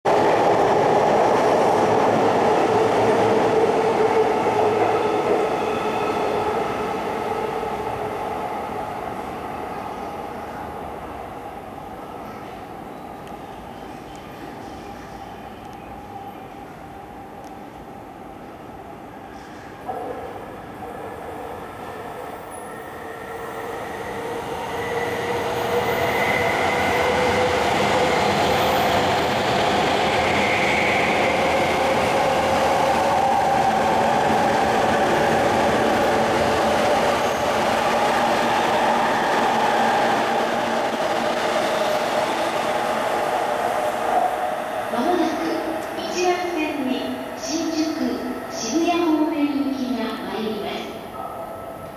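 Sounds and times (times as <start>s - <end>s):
electric train passing: 21.9s - 51.9s.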